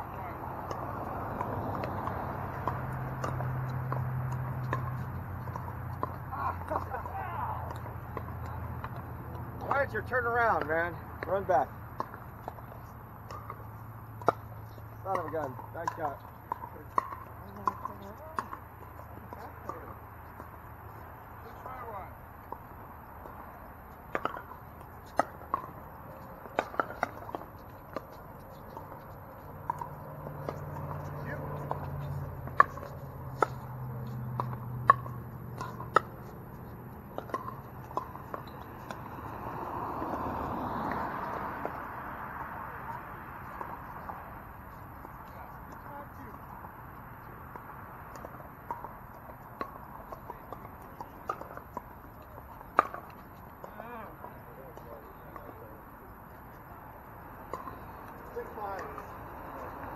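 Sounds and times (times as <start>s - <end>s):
paddles striking pickleballs: 0.0s - 59.9s.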